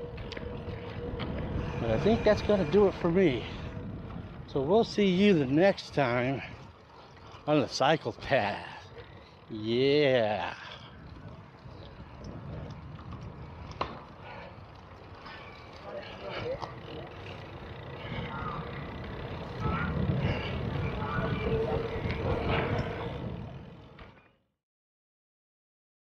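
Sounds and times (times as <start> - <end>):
outdoor background noise: 0.0 - 24.5.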